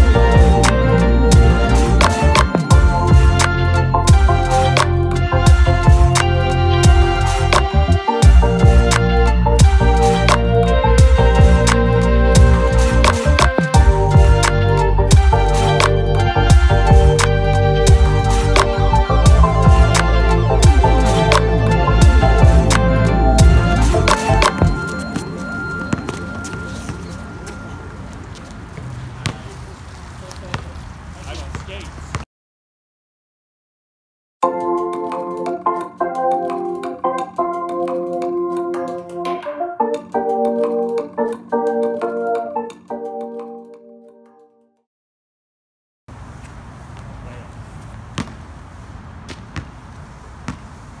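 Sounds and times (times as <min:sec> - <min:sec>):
background music: 0:00.0 - 0:27.9, 0:34.4 - 0:44.7
basketball bouncing on asphalt: 0:24.6 - 0:27.6, 0:28.8 - 0:29.5, 0:47.8 - 0:50.9
basketball bouncing on hard court: 0:29.2 - 0:29.4, 0:48.1 - 0:48.5, 0:49.3 - 0:49.8, 0:50.4 - 0:50.7.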